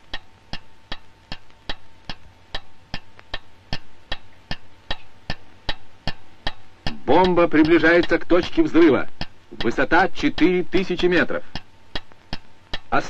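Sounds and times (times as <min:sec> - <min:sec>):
mechanical timer ticking: 0:00.0 - 0:13.0.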